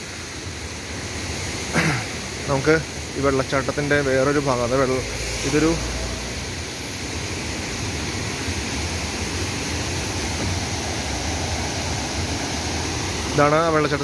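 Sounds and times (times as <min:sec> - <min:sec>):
waterfall rushing over rocks: 0:00.0 - 0:14.0.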